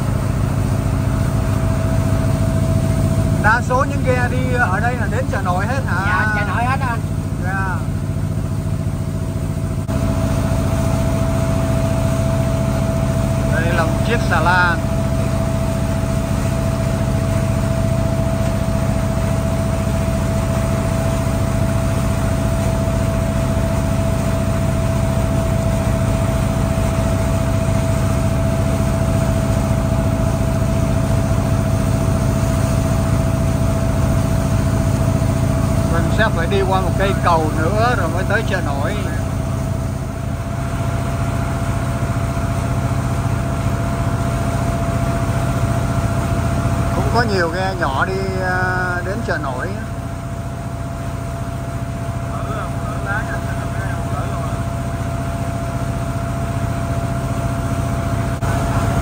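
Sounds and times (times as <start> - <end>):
boat engine running: 0.0 - 59.0
thin steady whine: 0.0 - 59.0.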